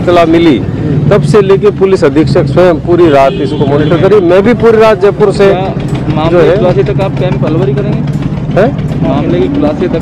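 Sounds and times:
engine idling: 0:00.0 - 0:10.0
voices talking: 0:00.0 - 0:10.0.

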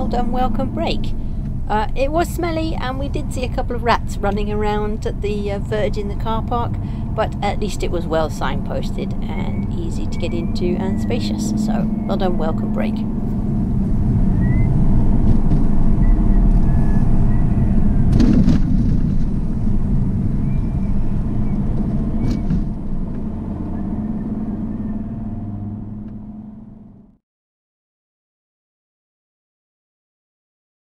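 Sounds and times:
car cabin road noise: 0:00.0 - 0:27.1
wheels hitting potholes: 0:14.4 - 0:23.4.

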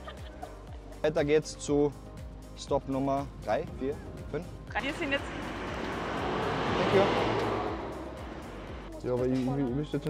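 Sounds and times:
pickup truck passing by: 0:03.4 - 0:09.7.

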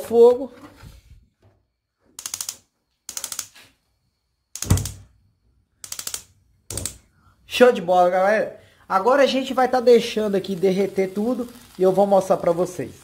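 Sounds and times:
gas stove igniter clicking: 0:04.5 - 0:05.1, 0:05.8 - 0:07.1.

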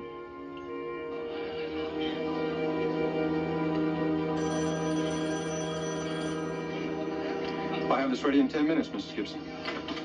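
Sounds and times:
sustained synthesizer chord: 0:00.0 - 0:09.7.

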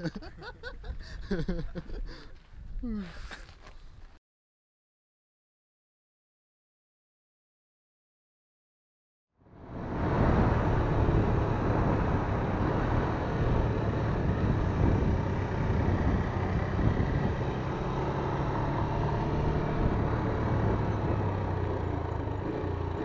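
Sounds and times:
road and wind noise: 0:00.0 - 0:04.2, 0:09.4 - 0:23.0
motorcycle engine running: 0:09.6 - 0:23.0.

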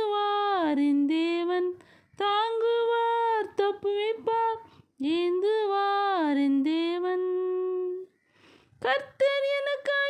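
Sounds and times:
woman singing unaccompanied: 0:00.0 - 0:08.2, 0:08.8 - 0:10.0.

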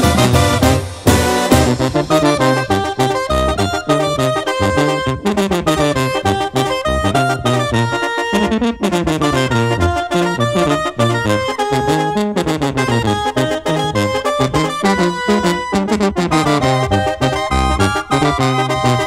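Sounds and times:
steady drum beat: 0:00.0 - 0:02.9
clarinets and brass: 0:00.0 - 0:19.0
sousaphone bass line: 0:00.0 - 0:19.0.

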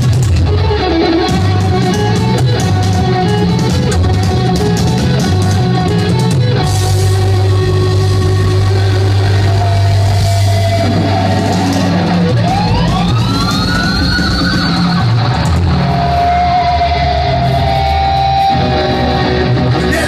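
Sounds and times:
drums: 0:00.0 - 0:20.0
electric guitar: 0:00.0 - 0:20.0.

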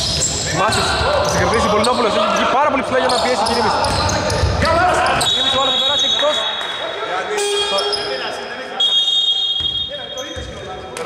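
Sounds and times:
referee's whistle blasts: 0:05.0 - 0:06.8, 0:08.8 - 0:10.4.

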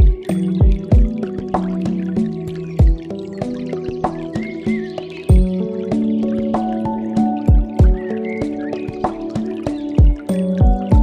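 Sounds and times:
deep kick drum hits: 0:00.0 - 0:01.1, 0:02.8 - 0:03.0, 0:05.3 - 0:05.6, 0:07.5 - 0:08.0, 0:10.0 - 0:11.0
chill music with beat: 0:00.0 - 0:11.0.

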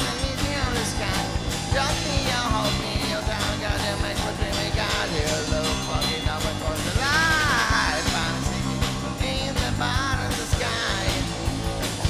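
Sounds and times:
bass guitar: 0:00.0 - 0:12.0
drum kit steady beat: 0:00.0 - 0:12.0
electric guitar: 0:00.0 - 0:12.0
high bending melody line: 0:00.0 - 0:12.0.

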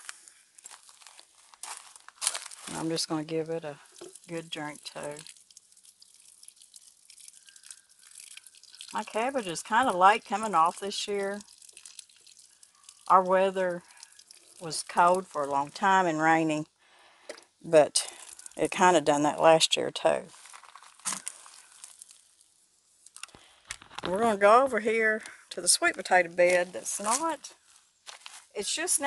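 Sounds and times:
water pouring onto soil: 0:00.0 - 0:16.6, 0:17.5 - 0:25.2, 0:25.9 - 0:29.0.

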